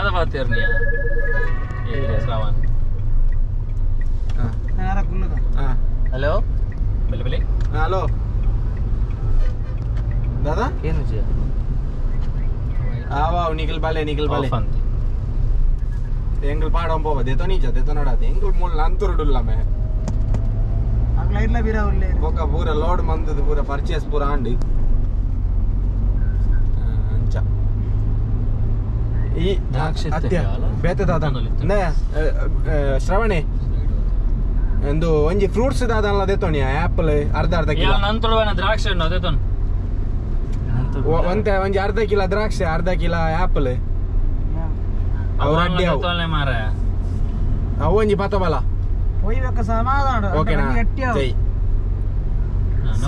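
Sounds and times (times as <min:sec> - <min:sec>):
voice: 0:00.0 - 0:02.6, 0:04.4 - 0:06.4, 0:07.1 - 0:08.1, 0:10.4 - 0:11.3, 0:12.8 - 0:14.8, 0:16.4 - 0:19.6, 0:26.7 - 0:27.4, 0:29.3 - 0:33.5, 0:34.8 - 0:39.4, 0:40.7 - 0:43.8, 0:45.4 - 0:46.8, 0:49.2 - 0:51.4
car engine and tyres rumbling: 0:00.0 - 0:53.0.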